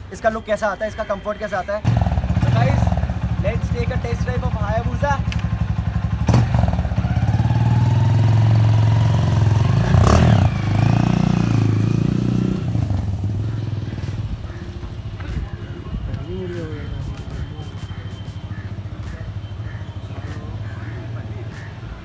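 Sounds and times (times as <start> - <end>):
motorcycle engine revving: 1.8 - 15.4.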